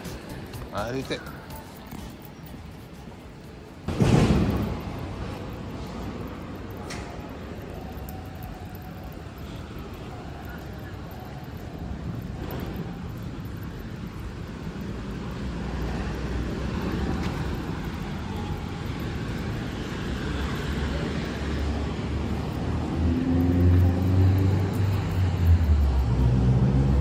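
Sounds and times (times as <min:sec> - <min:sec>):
street traffic: 0:00.0 - 0:27.0
vehicle engine humming: 0:00.0 - 0:27.0.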